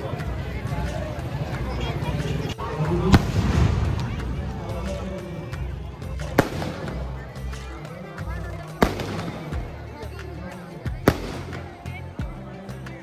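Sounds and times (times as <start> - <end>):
crowd voices: 0.0 - 13.0
loudspeaker music: 0.0 - 13.0
firecrackers banging: 2.3 - 10.3, 10.9 - 11.9.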